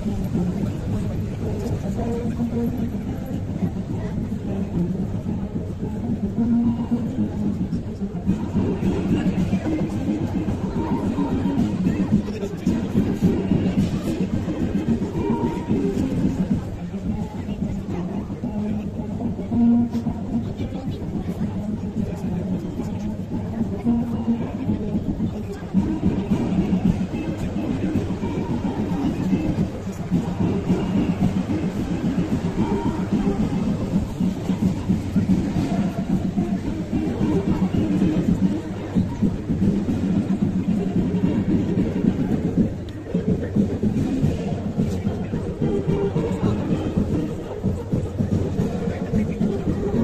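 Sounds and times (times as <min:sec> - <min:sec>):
announcer's voice over loudspeakers: 0:00.0 - 0:50.0
music over loudspeakers: 0:00.0 - 0:50.0.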